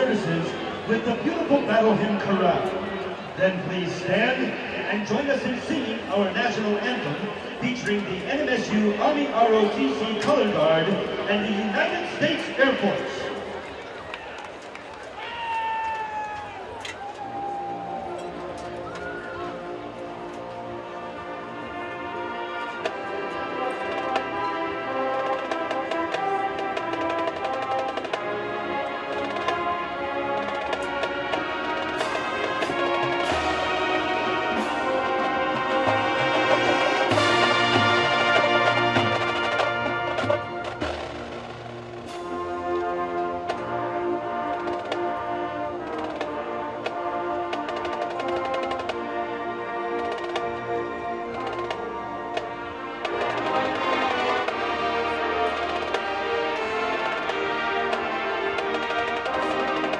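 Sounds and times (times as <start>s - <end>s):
brass chorale: 0.0s - 14.1s, 16.0s - 59.9s
marching percussion: 0.0s - 59.9s.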